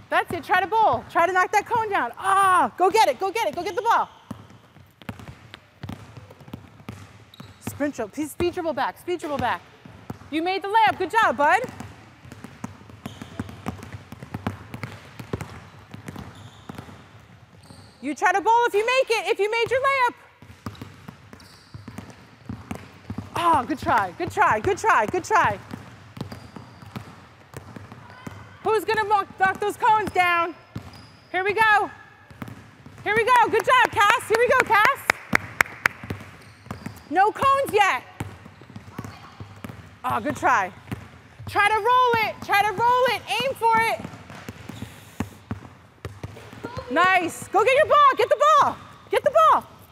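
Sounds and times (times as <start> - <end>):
basketballs bouncing on wooden floor: 0.0 - 49.9.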